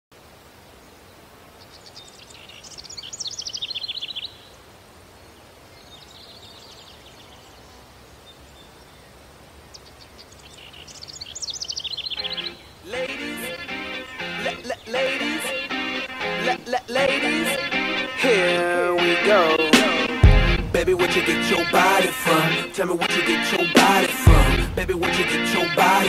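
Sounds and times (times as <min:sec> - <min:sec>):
outdoor background noise: 0:00.1 - 0:26.0
songbird trilling: 0:09.7 - 0:12.8
music: 0:12.2 - 0:26.0.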